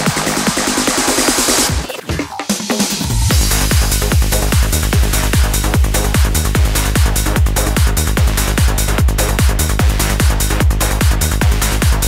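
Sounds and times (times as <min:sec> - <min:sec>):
kick drum thumps: 0:00.0 - 0:12.0
psychedelic trance music: 0:00.0 - 0:12.0
rolling bassline: 0:00.0 - 0:12.0
hi-hats: 0:02.5 - 0:12.0.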